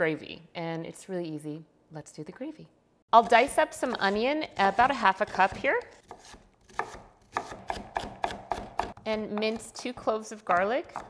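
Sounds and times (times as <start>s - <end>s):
knife chopping on wooden board: 3.2s - 9.8s, 10.4s - 11.0s.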